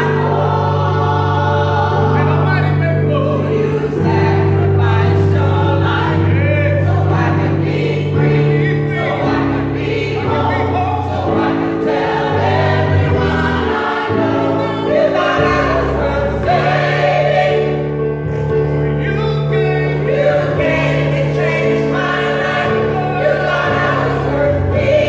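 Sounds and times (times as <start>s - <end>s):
digital piano chords: 0.0s - 25.0s
gospel choir singing: 0.0s - 25.0s.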